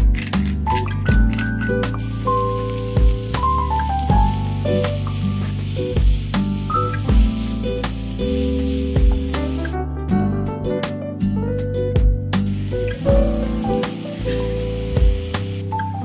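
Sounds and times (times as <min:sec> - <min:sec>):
background music with beat: 0:00.0 - 0:16.0
vegetables sizzling in a pan: 0:02.0 - 0:09.7, 0:12.5 - 0:16.0.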